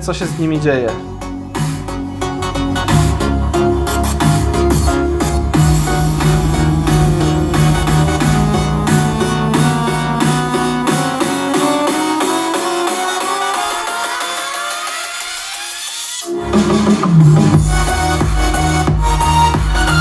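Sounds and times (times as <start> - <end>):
electronic dance music: 0.0 - 20.0
rising synth sweep: 2.2 - 14.3, 15.4 - 20.0.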